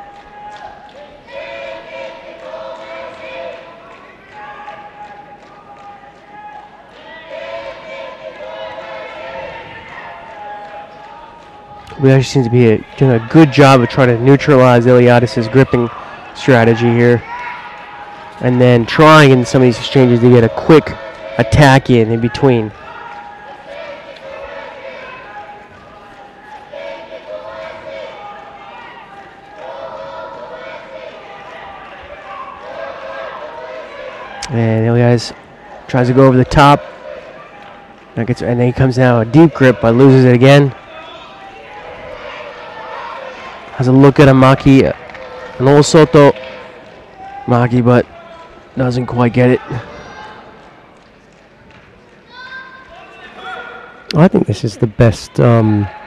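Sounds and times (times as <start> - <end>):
people shouting long calls: 0.0 - 34.6, 35.4 - 50.6.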